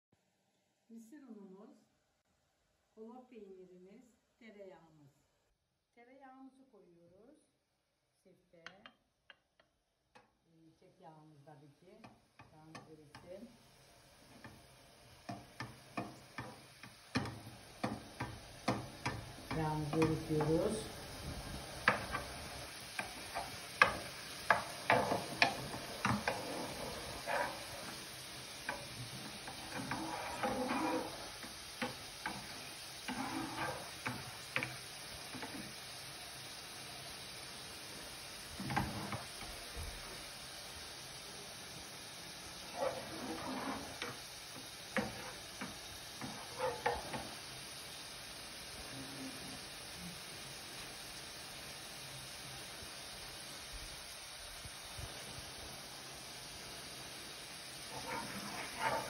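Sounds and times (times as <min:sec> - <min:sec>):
faint sizzle: 0:06.0 - 0:59.0
spoon tapping and scraping pan: 0:08.6 - 0:10.3, 0:12.0 - 0:13.4, 0:14.3 - 0:14.6, 0:15.2 - 0:35.8, 0:38.6 - 0:39.5, 0:42.6 - 0:47.4, 0:57.9 - 0:59.0.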